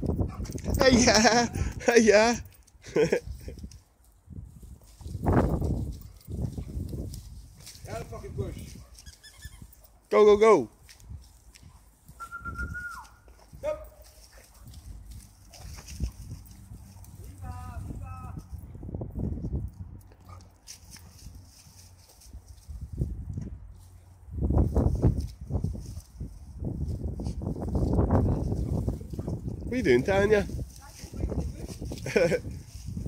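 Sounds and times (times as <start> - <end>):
dogs scuffling through brush: 4.4 - 10.1, 10.7 - 18.0, 20.2 - 33.0
dogs short high-pitched calls: 8.9 - 9.9.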